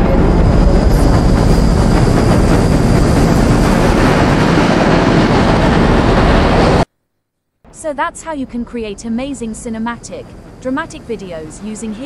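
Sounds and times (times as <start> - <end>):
rumble of aircraft fleet: 0.0 - 6.9, 7.7 - 12.0.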